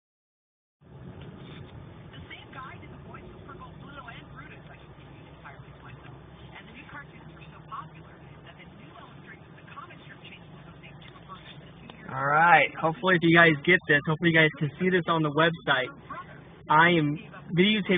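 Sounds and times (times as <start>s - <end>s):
car engine and road noise: 0.8s - 17.9s.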